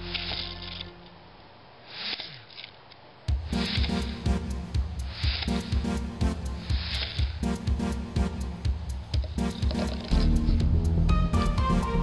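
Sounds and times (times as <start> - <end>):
background music with steady beat: 3.2 - 12.0.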